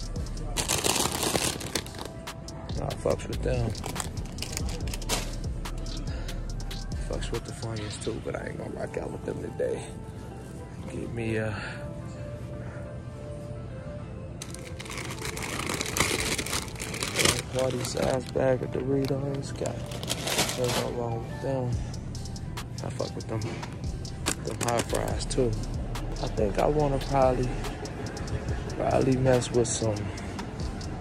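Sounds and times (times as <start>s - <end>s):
faint background music: 0.0s - 31.0s
plastic chip bag crinkling: 0.5s - 2.2s, 14.4s - 21.0s.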